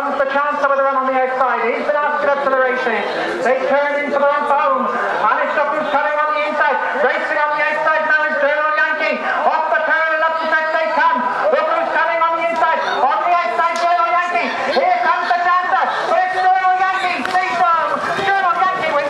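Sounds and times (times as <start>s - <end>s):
man announcing over public address: 0.0s - 19.0s.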